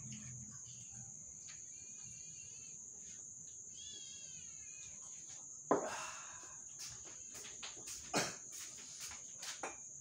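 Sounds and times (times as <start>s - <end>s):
night insects droning: 0.0s - 10.0s.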